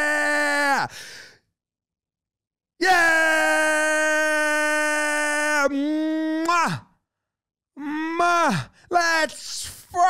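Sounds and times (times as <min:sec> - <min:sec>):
man yelling: 0:02.8 - 0:06.8, 0:08.2 - 0:10.0.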